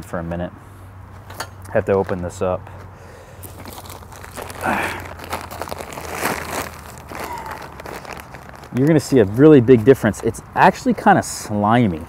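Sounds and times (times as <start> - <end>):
plastic bag crinkling and tearing: 3.4 - 9.2.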